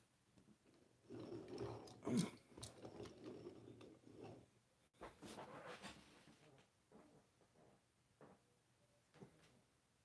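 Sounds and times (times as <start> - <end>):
metal toys rustling and clicking: 0.7 - 4.5.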